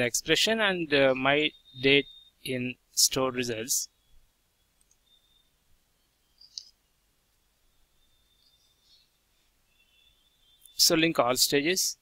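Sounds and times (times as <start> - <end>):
faint ticks: 4.8 - 5.2.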